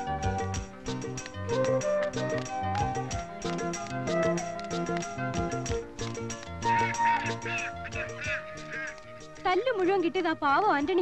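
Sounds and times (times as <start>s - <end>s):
background music: 0.0s - 11.0s
ducks quacking: 6.8s - 9.1s.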